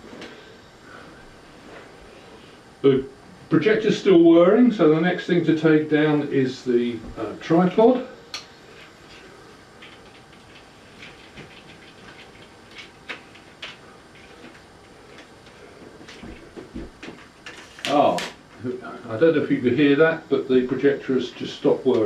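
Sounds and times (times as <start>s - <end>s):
projector cooling fan whirring: 0.0s - 22.0s.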